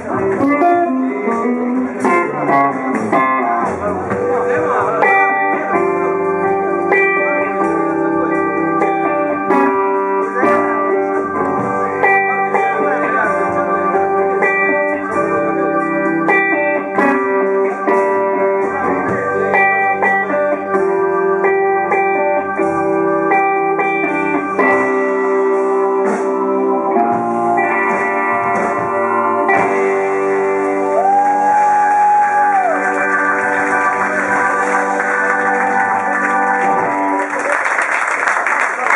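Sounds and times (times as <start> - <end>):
electric guitar lead: 0.0 - 37.6
blues band playing: 0.0 - 38.9.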